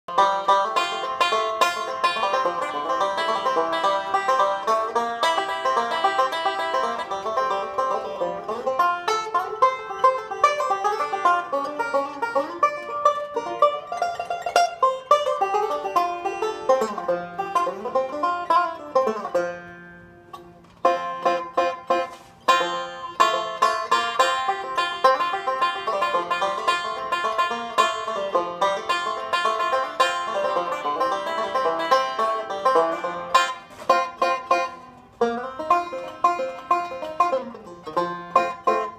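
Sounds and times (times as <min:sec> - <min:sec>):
banjo picked rapidly: 0:00.0 - 0:38.9.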